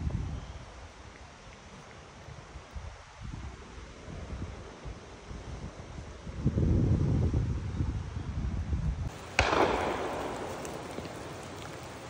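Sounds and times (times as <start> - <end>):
wind buffeting microphone: 2.2 - 12.0
shotgun shot with echo: 9.1 - 12.0.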